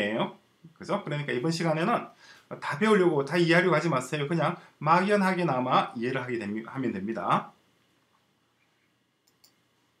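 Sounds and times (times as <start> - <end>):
computer mouse clicks: 9.2 - 9.6.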